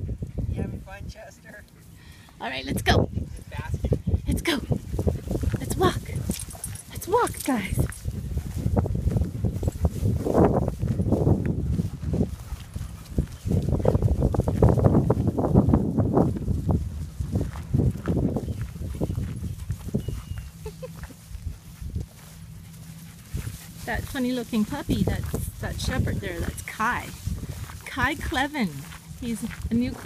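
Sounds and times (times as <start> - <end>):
footsteps on gravel: 4.8 - 30.0.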